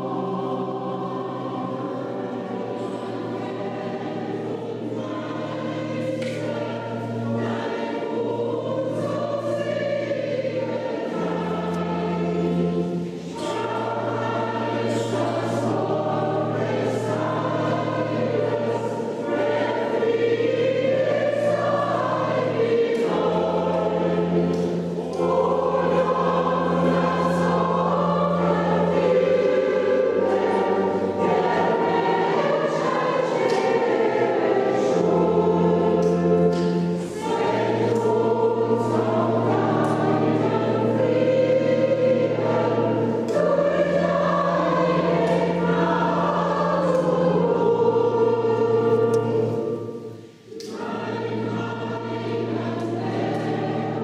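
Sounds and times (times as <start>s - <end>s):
choir singing a hymn: 0.0s - 54.0s
low organ notes: 0.0s - 54.0s.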